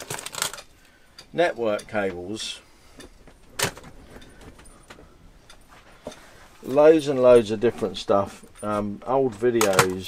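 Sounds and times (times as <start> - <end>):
cables and plastic items rattling: 0.0 - 1.0, 3.0 - 5.1, 6.1 - 10.0.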